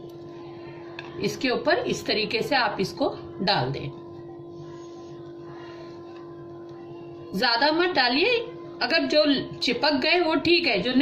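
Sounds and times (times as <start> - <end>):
steady hum: 0.0 - 11.0.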